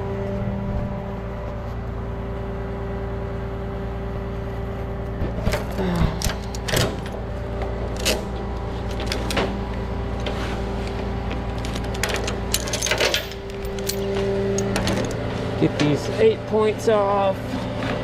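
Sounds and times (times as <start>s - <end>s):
truck engine idling: 0.0s - 18.0s
metallic clicks and clanks: 11.6s - 15.2s.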